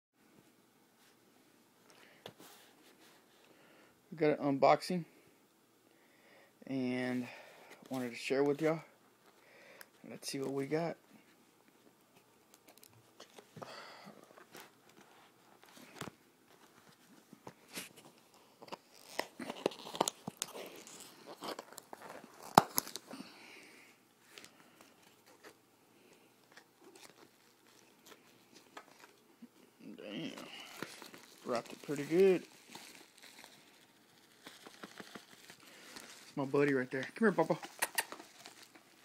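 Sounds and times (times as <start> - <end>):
wrapping paper tearing and crinkling: 18.6 - 23.3, 30.2 - 39.0.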